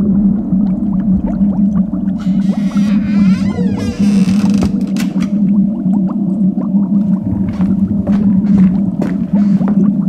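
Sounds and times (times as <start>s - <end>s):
steady low drone: 0.0s - 9.8s
low gurgling bubbling: 0.0s - 10.0s.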